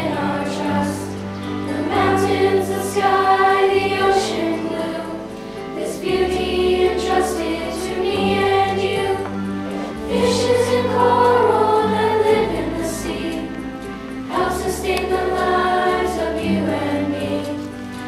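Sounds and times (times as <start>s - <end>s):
chorus singing in unison: 0.0s - 18.0s.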